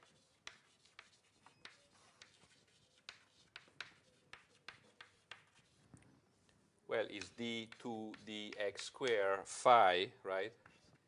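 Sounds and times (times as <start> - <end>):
writing strokes on a board: 0.0 - 6.0, 7.0 - 9.3, 10.5 - 11.0.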